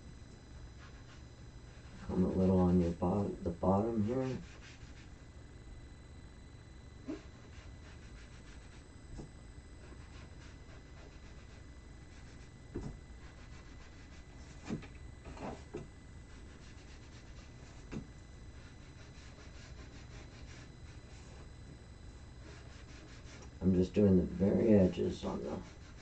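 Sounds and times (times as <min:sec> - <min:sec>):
sponge rubbing on card: 0:00.8 - 0:05.2, 0:07.0 - 0:21.5, 0:22.4 - 0:23.5, 0:25.2 - 0:26.0.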